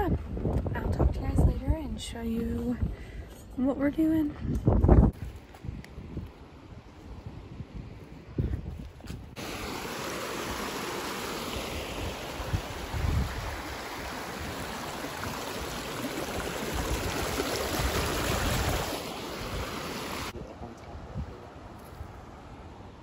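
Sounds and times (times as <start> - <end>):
wind rumble on microphone: 0.0 - 9.4, 11.7 - 23.0
creek water rushing over rocks: 9.4 - 20.4.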